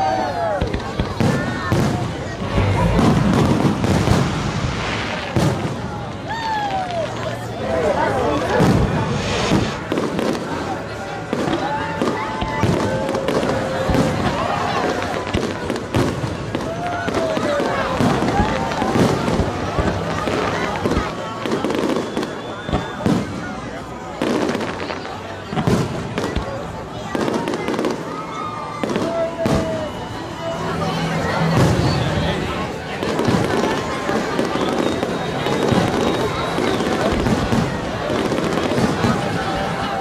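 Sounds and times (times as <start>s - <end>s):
fireworks bangs and crackles: 0.0s - 40.0s
onlookers' voices: 0.0s - 40.0s.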